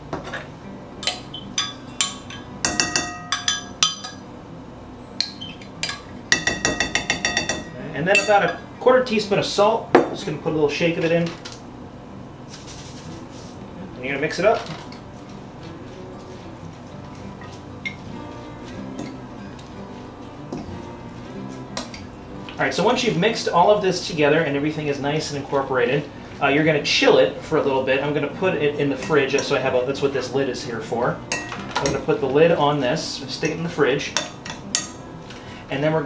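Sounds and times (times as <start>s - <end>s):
spoon clinking on glass: 1.0s - 4.2s, 5.2s - 8.6s
background music: 13.3s - 26.0s, 26.8s - 36.0s.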